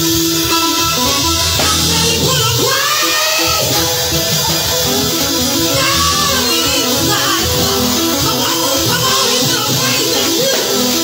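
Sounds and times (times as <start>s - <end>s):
electric guitar: 0.0s - 11.0s
keyboard: 0.0s - 11.0s
worship band playing: 0.0s - 11.0s.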